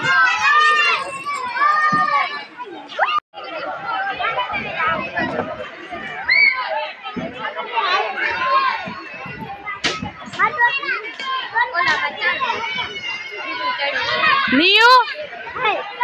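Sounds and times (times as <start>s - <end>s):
children calling and chattering: 0.0s - 16.0s.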